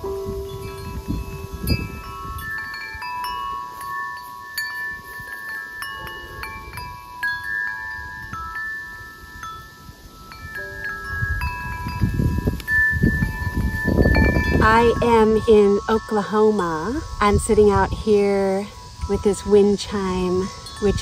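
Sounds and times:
tubular wind chime ringing: 0.0 - 21.0.

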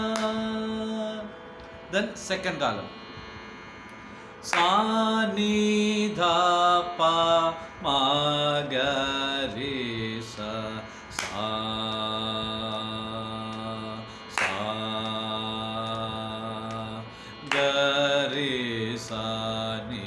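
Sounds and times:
man singing long held notes: 0.0 - 2.2, 4.4 - 20.0
steady drone: 0.0 - 20.0.

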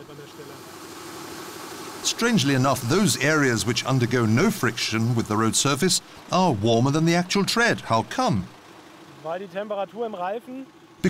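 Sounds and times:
even hiss: 0.0 - 8.6
lorry engine idling: 0.0 - 11.0.

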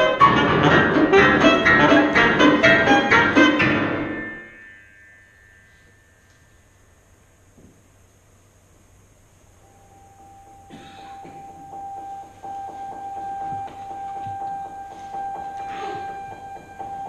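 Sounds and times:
saxophone and piano music: 0.0 - 4.7.

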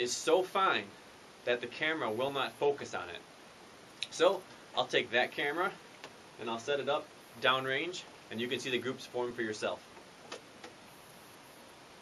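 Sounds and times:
low hiss of room tone: 0.0 - 12.0.

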